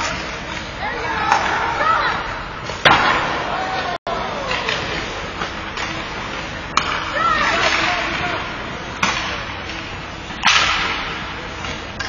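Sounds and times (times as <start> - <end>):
hockey sticks and puck clicking: 4.4 - 8.4, 9.0 - 12.0.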